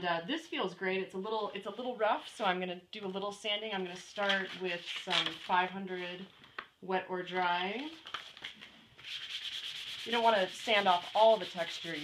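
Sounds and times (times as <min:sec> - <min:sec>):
sandpaper rasping: 0:09.0 - 0:12.0.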